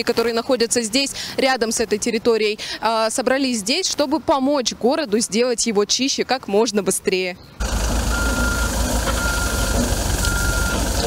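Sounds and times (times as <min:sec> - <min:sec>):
loader engine running: 0:07.6 - 0:11.0
reversing alarm beeping: 0:08.0 - 0:11.0.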